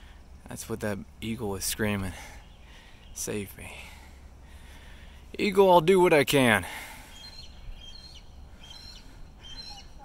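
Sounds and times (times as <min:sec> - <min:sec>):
birds chirping: 0:00.0 - 0:10.0
low outdoor background: 0:00.0 - 0:10.0.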